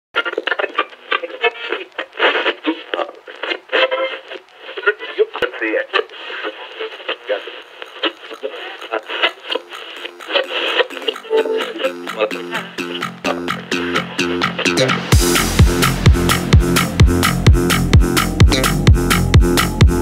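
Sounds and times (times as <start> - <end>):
filtered house music: 0.2 - 20.0
chopped vocal sample: 10.2 - 20.0.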